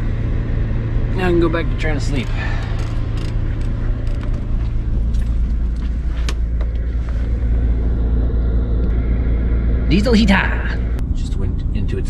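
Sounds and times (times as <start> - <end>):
light clicks and knocks: 2.1 - 6.9.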